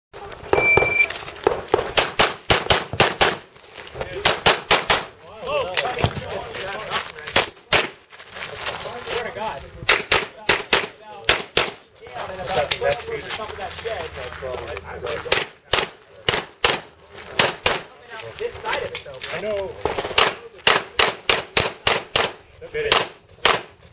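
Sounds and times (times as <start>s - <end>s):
pistol shots: 0.5s - 3.5s, 4.2s - 5.1s, 9.9s - 11.8s, 15.3s - 17.9s, 19.8s - 23.8s
shot timer beep: 0.6s - 1.1s.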